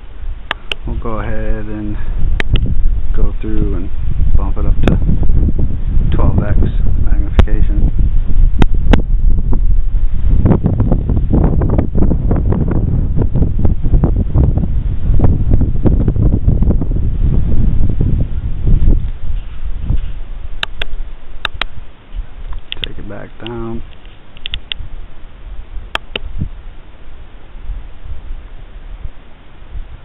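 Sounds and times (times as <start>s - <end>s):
wind buffeting microphone: 0.0s - 30.0s
sharp clicks: 0.4s - 0.9s, 2.4s - 2.7s, 20.6s - 21.8s, 22.4s - 24.8s, 25.9s - 26.3s.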